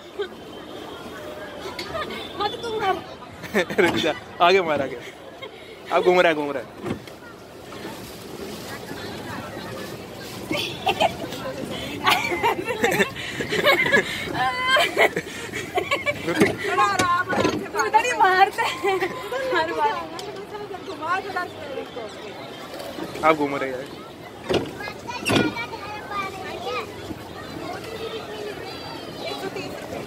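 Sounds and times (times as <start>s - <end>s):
faint voices: 0.0s - 30.0s
people talking: 7.0s - 30.0s.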